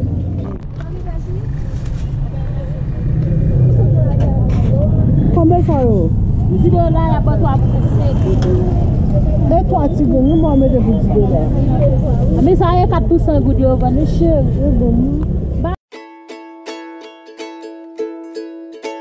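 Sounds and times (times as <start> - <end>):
vehicle engines rumbling: 0.0 - 15.8
people talking: 0.4 - 15.8.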